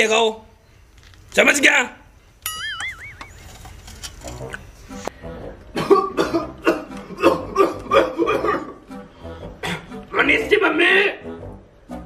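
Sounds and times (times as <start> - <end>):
man coughing rapidly: 5.8 - 8.8.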